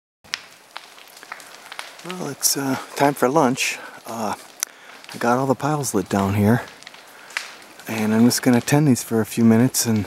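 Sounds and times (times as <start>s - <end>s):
brush pile fire crackling: 0.2s - 10.0s
faint hiss: 1.2s - 10.0s.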